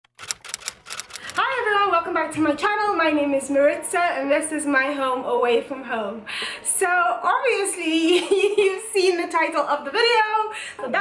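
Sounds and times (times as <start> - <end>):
run of sharp clicks: 0.0 - 1.4.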